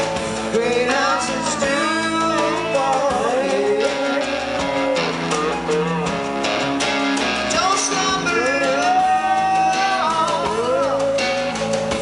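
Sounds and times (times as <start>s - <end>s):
rock band on electric guitars: 0.0s - 12.0s
person singing long held notes: 7.6s - 11.7s.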